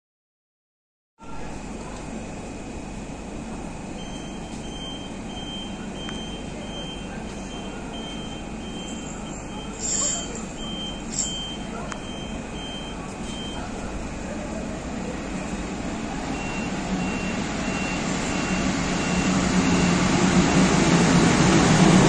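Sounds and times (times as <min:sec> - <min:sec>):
electronic warning beeps: 0:04.0 - 0:14.0, 0:16.2 - 0:20.3
electric trains rumbling: 0:13.8 - 0:22.0.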